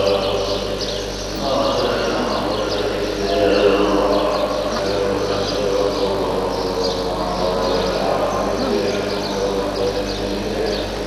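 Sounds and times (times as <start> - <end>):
monks chanting in low drone: 0.0 - 11.0.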